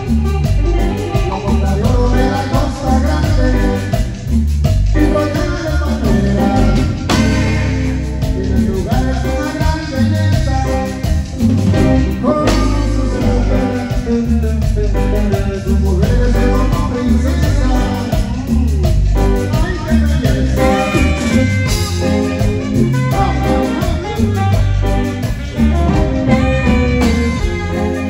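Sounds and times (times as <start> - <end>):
saxophone melody: 0.0 - 4.4, 5.0 - 28.0
latin dance band playing: 0.0 - 28.0.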